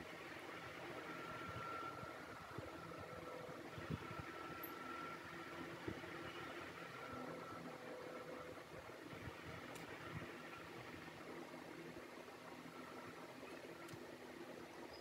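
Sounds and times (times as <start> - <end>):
faint steady hum: 0.0 - 15.0.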